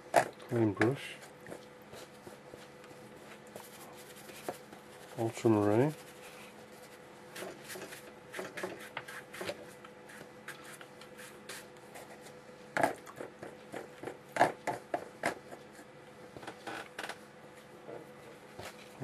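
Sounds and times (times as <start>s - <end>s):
brush swishing on wet paper: 1.0s - 12.4s.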